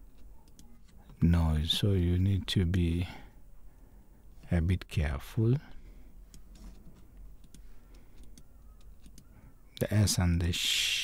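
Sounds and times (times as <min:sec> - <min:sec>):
computer mouse clicks: 0:00.2 - 0:01.2, 0:07.4 - 0:09.3.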